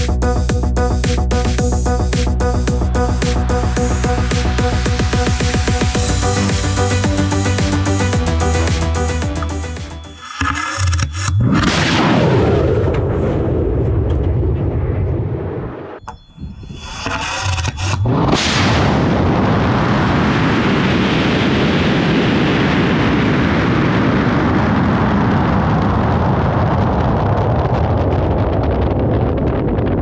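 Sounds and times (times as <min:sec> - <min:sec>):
rushing wind: 0:11.4 - 0:30.0.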